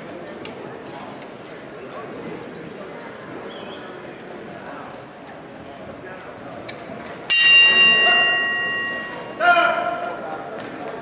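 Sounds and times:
crowd murmur: 0.0s - 11.0s
boxing ring bell ringing: 7.3s - 10.4s
loud shout: 9.2s - 10.2s.

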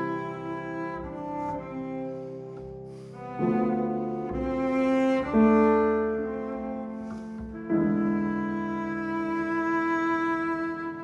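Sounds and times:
slow quiet piano: 0.0s - 11.0s.

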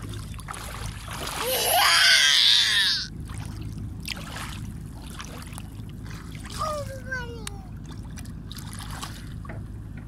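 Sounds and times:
high-pitched vocal cry: 1.4s - 3.1s.

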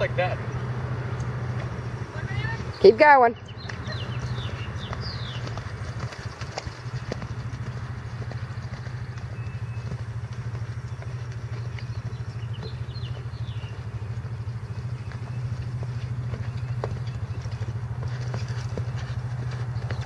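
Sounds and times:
low mechanical drone: 0.0s - 20.0s
horse hoofbeats on dirt: 1.2s - 20.0s
bird chirps: 2.2s - 20.0s.

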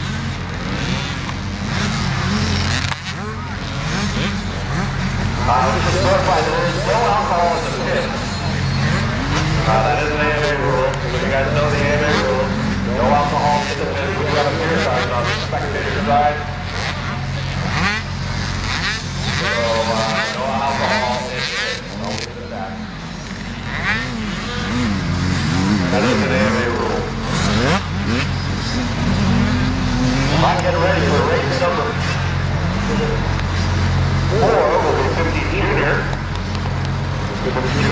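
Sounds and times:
motorbike engines revving: 0.0s - 37.9s.

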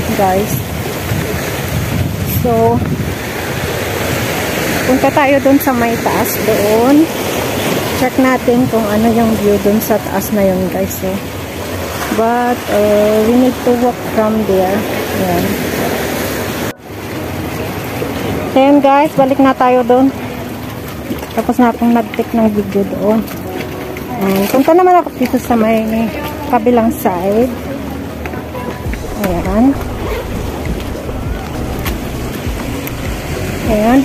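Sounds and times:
wind on microphone: 0.0s - 18.7s, 28.2s - 34.0s
seaside rushing noise: 0.0s - 21.6s, 22.7s - 34.0s
sea waves against rocks: 0.0s - 34.0s.

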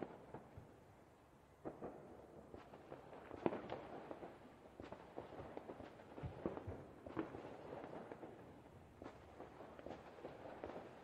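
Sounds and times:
fireworks and firecrackers popping: 1.6s - 11.0s.

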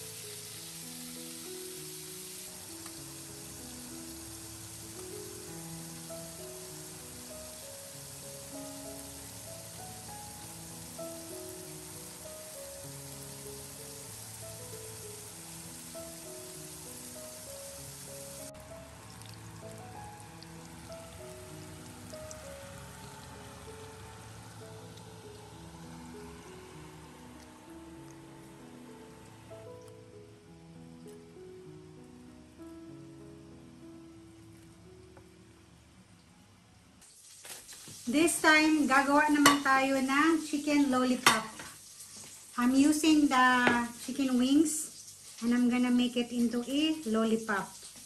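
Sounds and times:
food frying in hot oil: 0.0s - 29.9s, 37.0s - 48.0s
instrumental background music: 0.0s - 36.4s, 38.1s - 41.7s.

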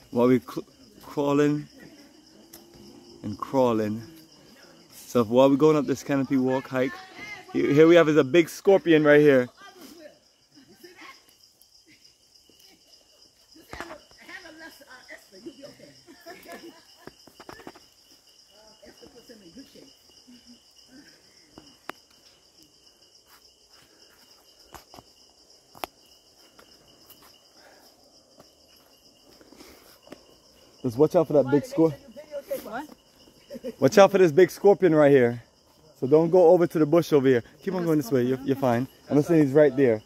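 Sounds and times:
insects chorus: 0.0s - 40.0s.

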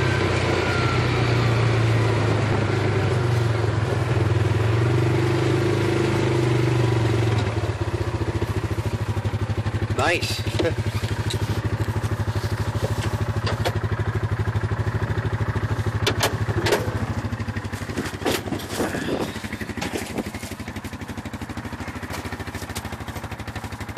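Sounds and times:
utility vehicle engine running: 0.0s - 23.9s
sharp clatters and knocks: 17.8s - 19.0s.

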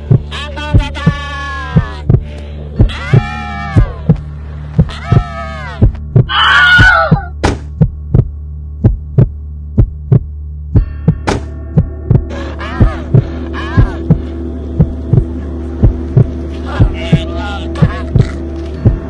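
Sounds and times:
heartbeat thumps: 0.0s - 19.0s
low drone: 8.0s - 19.0s.

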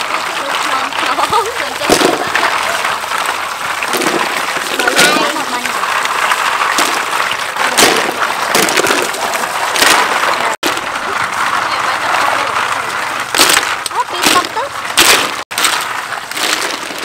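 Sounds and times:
hose water splashing into metal basin: 0.0s - 17.0s.

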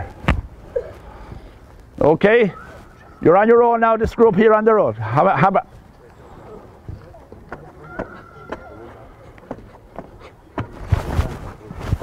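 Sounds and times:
faint background chatter: 5.7s - 12.0s.

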